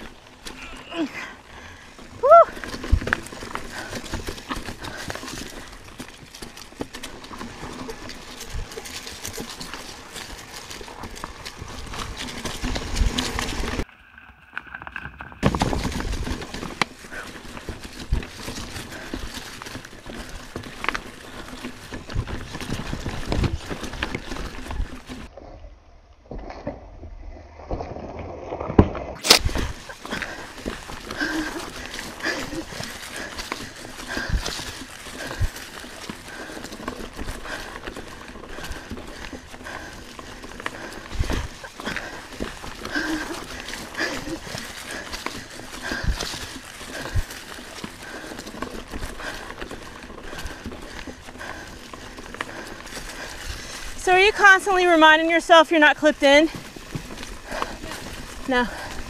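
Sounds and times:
bike clattering and rattling: 0.0s - 25.3s, 28.7s - 59.0s
bike tyres on dirt and rock: 0.0s - 25.6s, 26.2s - 59.0s.

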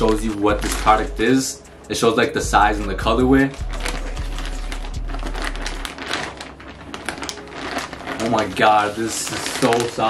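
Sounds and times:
plastic bag crinkling: 0.0s - 2.2s, 3.0s - 10.0s.

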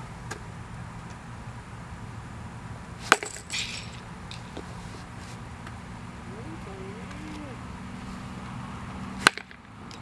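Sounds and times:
baseball bat hitting ball: 3.0s - 4.4s, 9.2s - 9.6s.

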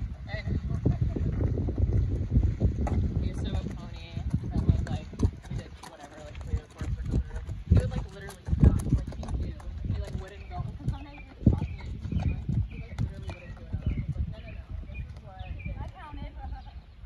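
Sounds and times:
horse hooves thudding on dirt: 0.0s - 17.0s
wind on microphone: 0.0s - 17.0s.

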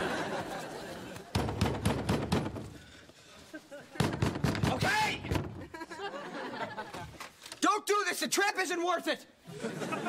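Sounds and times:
audience laughter: 0.0s - 1.3s, 5.6s - 7.3s, 9.5s - 10.0s.

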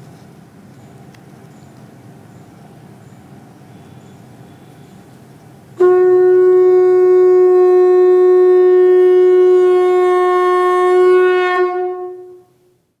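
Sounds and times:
conch shell blown: 5.8s - 12.8s.

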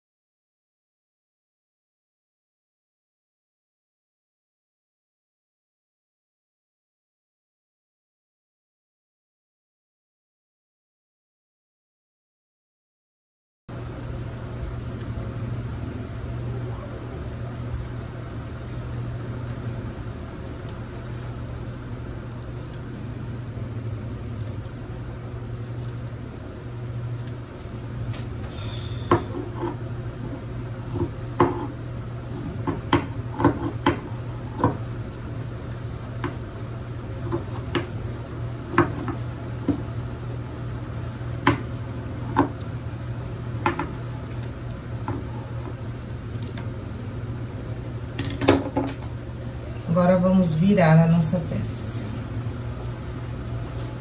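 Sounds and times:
steady low hum: 13.7s - 54.0s.

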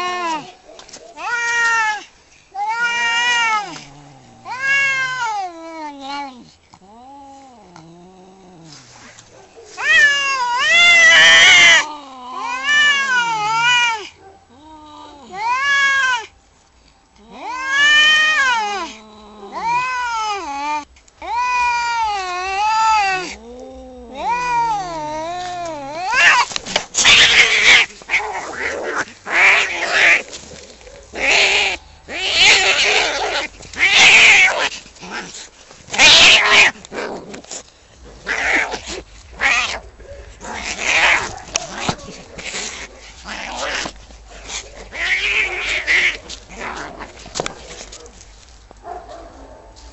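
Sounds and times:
cats screeching in a fight: 0.0s - 7.4s, 9.7s - 16.3s, 17.2s - 37.6s, 38.2s - 48.3s
cats yowling: 0.0s - 8.0s, 9.7s - 16.3s, 17.2s - 37.6s, 38.2s - 48.2s.

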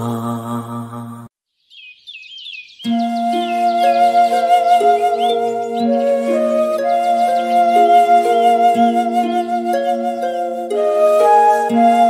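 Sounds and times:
chanted mantra with drone: 0.0s - 1.3s
bird chirping: 1.4s - 10.7s
soft instrumental music: 2.8s - 12.0s.

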